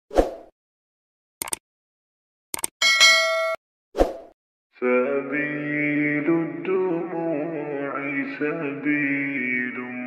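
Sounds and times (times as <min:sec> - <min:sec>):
quick clicks: 0:01.4 - 0:01.6, 0:02.5 - 0:02.7
notification bell ding: 0:02.8 - 0:03.6.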